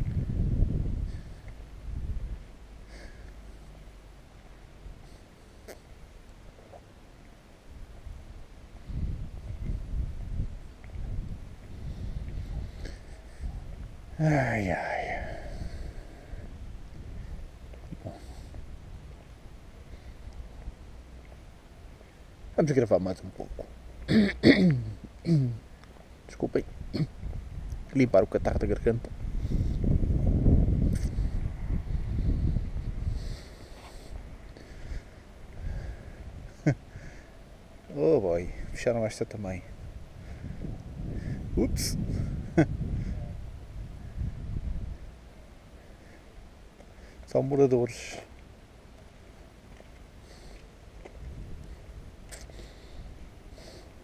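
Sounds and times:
wind buffeting microphone: 0.0s - 2.6s, 7.7s - 21.0s, 26.6s - 37.2s, 39.6s - 45.2s, 51.0s - 54.0s
faint background rumble: 0.0s - 54.0s
man clearing throat: 24.1s - 25.6s, 26.9s - 27.2s.

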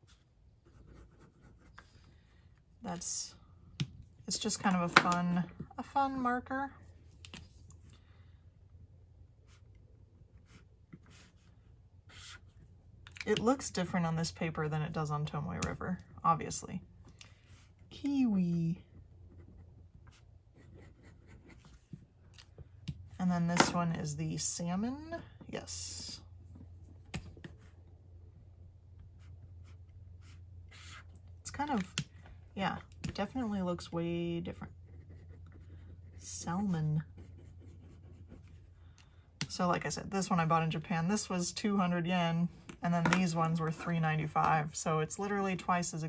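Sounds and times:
marker drawing on paper: 29.2s - 31.1s.

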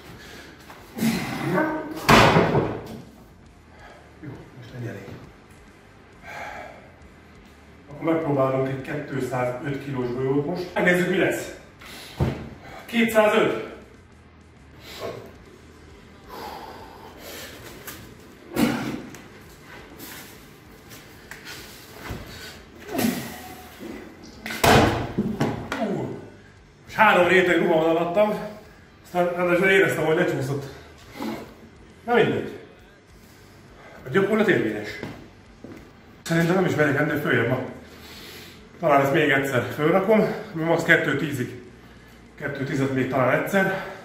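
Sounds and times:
strained grunts: 0.9s - 2.0s, 18.5s - 19.2s, 22.8s - 24.2s, 31.1s - 31.7s
heavy breaths: 6.0s - 7.3s, 14.6s - 24.2s, 32.7s - 34.1s, 37.8s - 38.8s, 43.6s - 44.0s.

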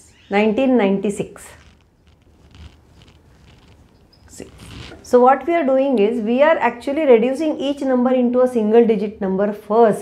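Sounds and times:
marker squeaking on whiteboard: 0.0s - 0.7s, 1.3s - 5.1s.

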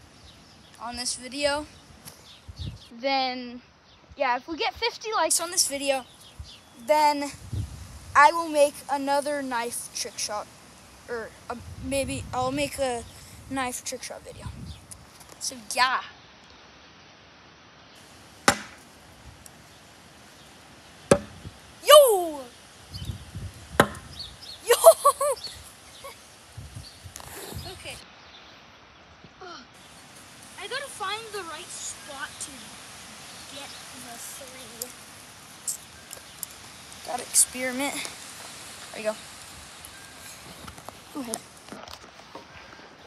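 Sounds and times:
sharp tap: 18.5s - 18.8s
person crying out: 21.8s - 22.4s, 24.7s - 25.4s.

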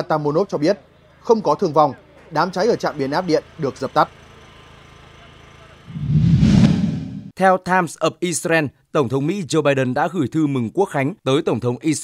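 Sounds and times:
whoosh sound effect: 5.9s - 7.3s.

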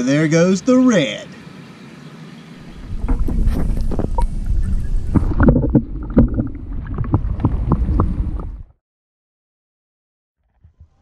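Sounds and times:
wind rumbling on microphone: 2.6s - 8.8s
knocks and thumps: 2.7s - 8.7s.

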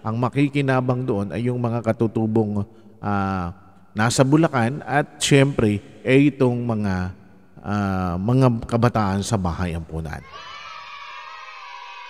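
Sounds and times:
people talking: 0.0s - 10.2s
crowd cheering: 10.2s - 12.0s.

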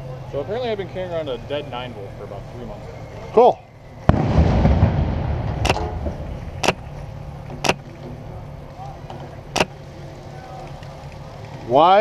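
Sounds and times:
low engine hum: 0.0s - 12.0s
blast rumbling: 3.9s - 10.3s
airsoft gun shots: 4.1s - 6.8s.

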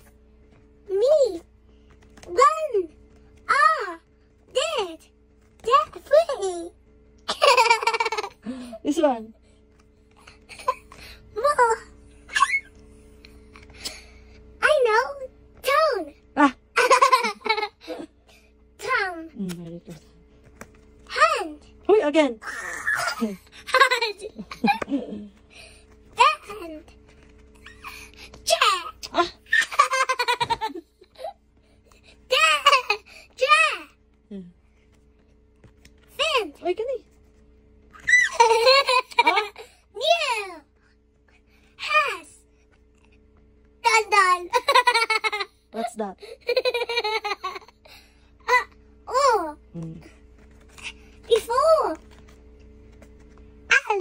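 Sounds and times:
child laughing: 7.3s - 8.8s, 10.3s - 12.8s, 16.7s - 18.2s, 22.4s - 25.4s, 27.6s - 31.4s, 32.3s - 33.7s, 38.0s - 40.5s, 44.0s - 45.6s, 46.2s - 47.8s.

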